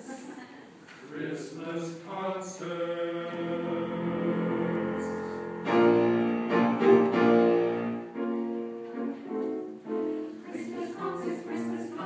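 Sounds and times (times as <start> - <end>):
piano playing chords: 3.3 - 11.6.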